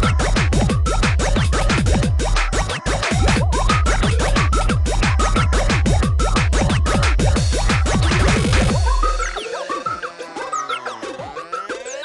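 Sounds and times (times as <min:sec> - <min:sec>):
distorted kick drums: 0:00.0 - 0:10.0.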